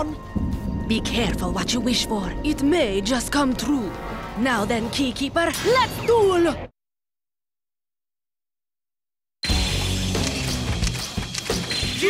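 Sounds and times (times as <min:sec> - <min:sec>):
dramatic background music: 0:00.0 - 0:06.7.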